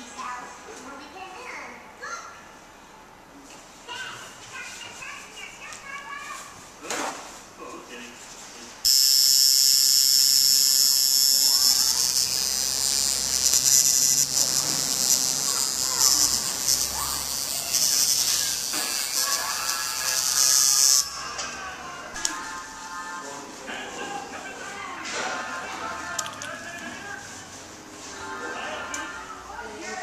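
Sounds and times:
tattoo machine buzzing: 8.8 - 21.4.

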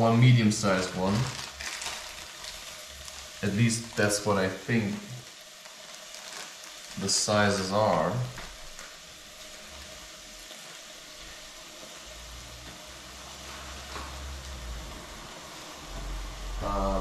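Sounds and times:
food sizzling in fat: 0.0 - 17.0.

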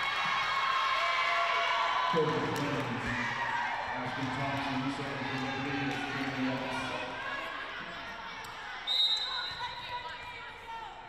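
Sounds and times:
referee's whistle blast: 8.9 - 9.9.

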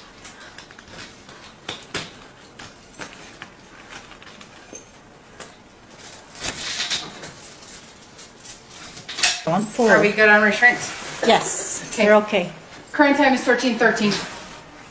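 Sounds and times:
rustling: 0.0 - 14.9.

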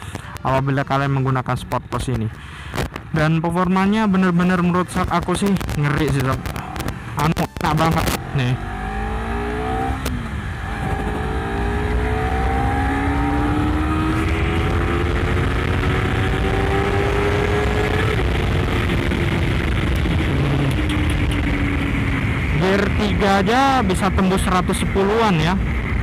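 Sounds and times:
motorcycle engine accelerating: 5.2 - 26.0.

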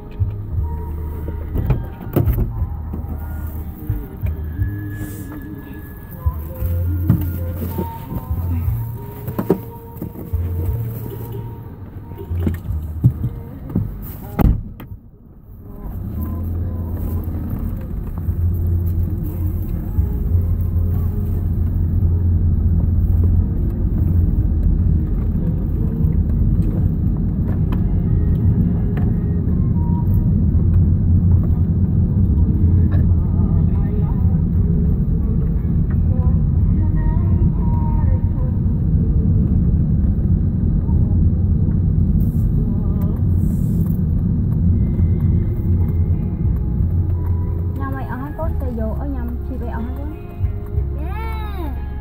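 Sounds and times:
car engine and road rumble: 0.0 - 52.0.

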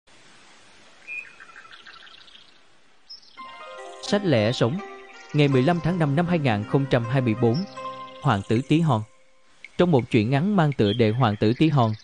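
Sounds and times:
faint steady hiss: 0.1 - 12.0
birds chirping: 1.0 - 12.0
soft background music: 3.4 - 12.0.

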